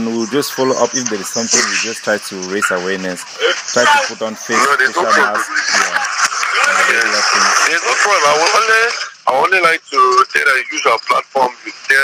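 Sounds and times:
man talking over a phone line: 0.0 - 6.0, 6.7 - 12.0.

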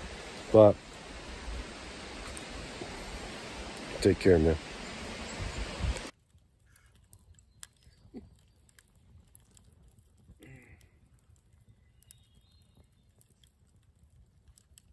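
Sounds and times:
campfire crackling: 0.0 - 14.9.

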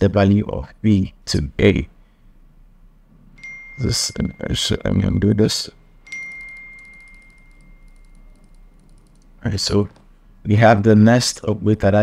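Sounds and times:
high chime tone: 3.4 - 5.3, 6.0 - 8.9
faint high ticking: 6.1 - 10.0.

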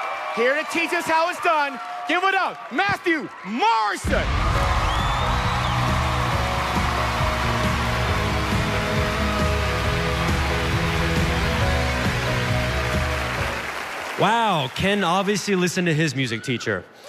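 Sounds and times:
audience applause: 0.0 - 15.9
walk-on music: 5.3 - 13.8.

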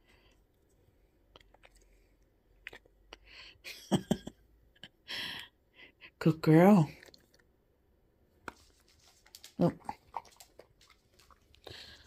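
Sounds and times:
dog claws clicking on tile: 8.5 - 11.5.

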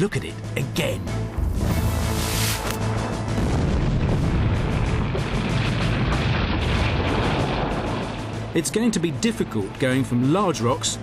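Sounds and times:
background music: 0.0 - 11.0
quarry blast boom: 1.4 - 8.4
rock sliding rumble: 1.6 - 9.7.

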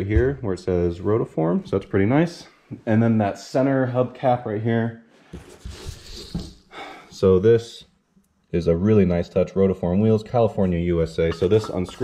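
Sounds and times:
person breathing softly: 5.1 - 7.2.

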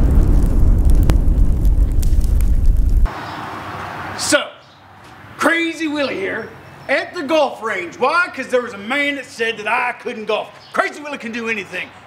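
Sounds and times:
explosion and fire rumble: 0.0 - 3.1.

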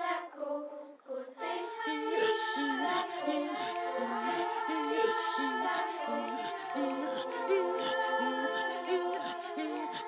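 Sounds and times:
children's choir singing a cappella: 0.0 - 10.0.

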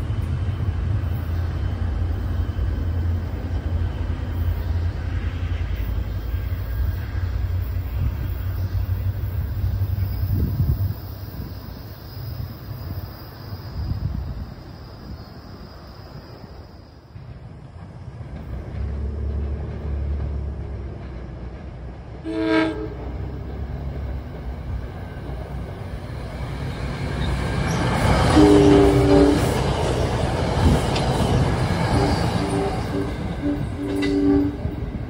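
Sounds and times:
train rumbling on rails: 0.0 - 35.0
train horn: 22.2 - 23.6, 27.7 - 30.0, 31.8 - 35.0.

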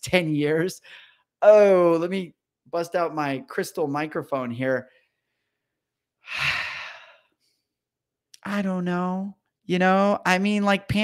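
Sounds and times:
man sighing: 6.2 - 7.3.

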